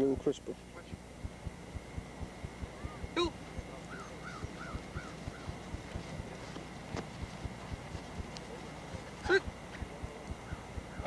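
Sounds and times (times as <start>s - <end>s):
birds chirping: 0.0s - 11.0s
faint low ticking: 0.2s - 6.0s
bird harsh call: 2.8s - 5.6s.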